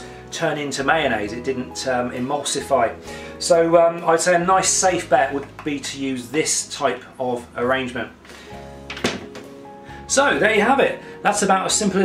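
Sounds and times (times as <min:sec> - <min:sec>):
hand mixer set down thunk: 0:08.9 - 0:09.5.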